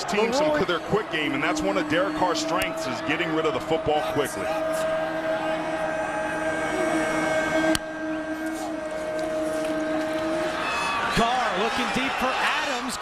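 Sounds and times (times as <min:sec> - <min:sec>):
stadium crowd sound: 0:00.0 - 0:13.0
sustained droning tone: 0:00.1 - 0:11.2.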